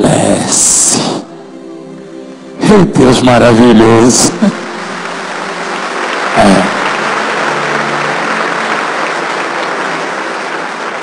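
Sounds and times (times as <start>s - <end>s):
crowd applauding: 3.8s - 11.0s.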